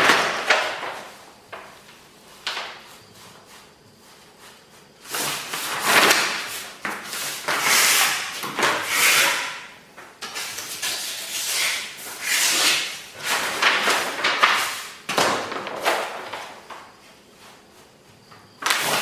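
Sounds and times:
paper rustling and swishing: 0.0s - 9.4s, 10.2s - 19.0s.

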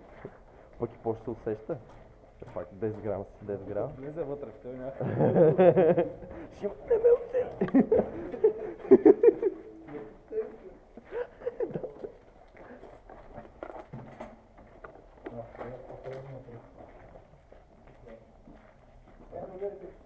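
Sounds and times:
footsteps on gritty concrete: 0.0s - 5.0s, 5.8s - 20.0s
men talking indistinctly: 0.8s - 5.4s, 15.2s - 16.8s, 19.2s - 20.0s.

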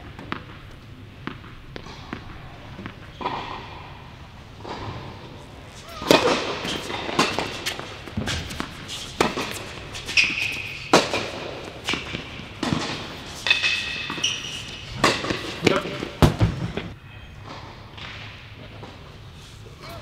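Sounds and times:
tennis ball bouncing: 0.1s - 3.9s, 4.6s - 16.8s
racket striking tennis ball: 5.8s - 16.8s
short high shoe squeaks: 10.0s - 11.0s, 13.9s - 15.0s.

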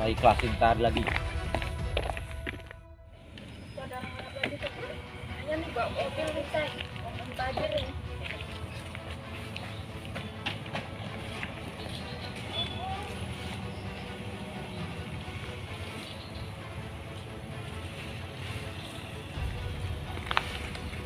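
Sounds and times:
quiet background music: 0.0s - 21.0s.

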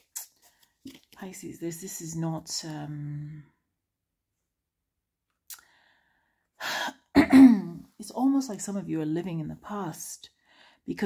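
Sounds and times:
woman clearing her throat: 7.2s - 7.8s.

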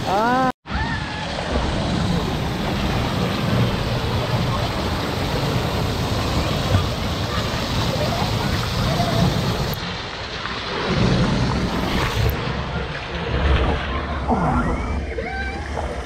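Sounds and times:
water rushing and splashing: 0.0s - 16.0s.

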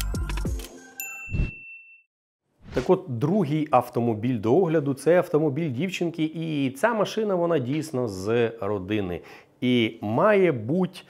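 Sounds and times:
bright bell ding: 1.0s - 2.1s.

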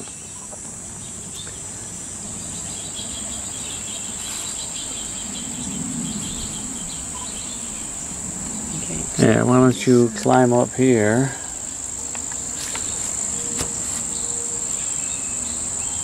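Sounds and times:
insects trilling: 0.0s - 16.0s
rapidly pulsing chirp: 0.0s - 16.0s.

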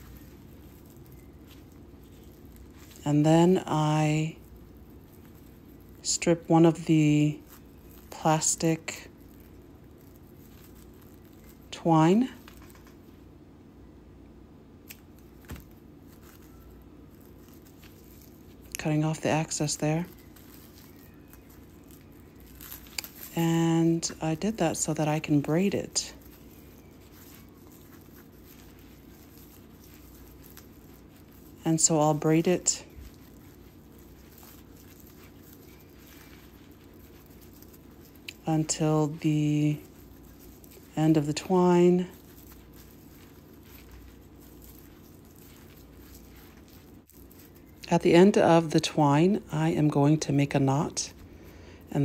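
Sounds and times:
plastic twine crinkling: 0.0s - 13.4s, 14.8s - 52.0s
low steady hum: 0.0s - 52.0s.

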